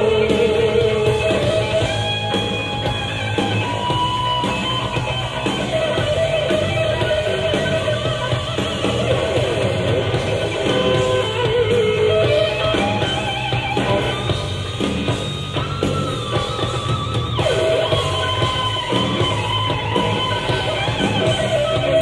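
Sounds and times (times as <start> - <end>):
electric guitar vibrato notes: 0.0 - 22.0
hard rock band playing live: 0.0 - 22.0.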